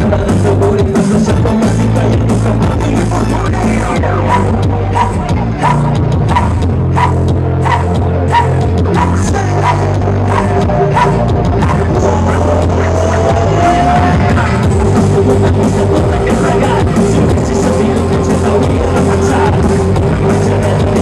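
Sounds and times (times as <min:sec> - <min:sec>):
deep bass guitar line: 0:00.0 - 0:21.0
drum beat: 0:00.0 - 0:21.0
live band playing amplified music: 0:00.0 - 0:21.0.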